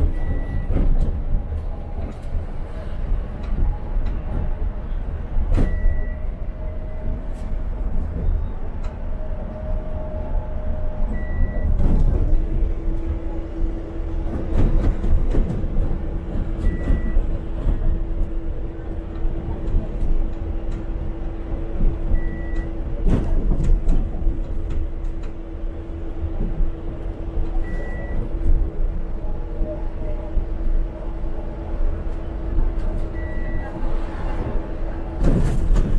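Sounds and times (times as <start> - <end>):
bus engine and road rumble: 0.0 - 35.9.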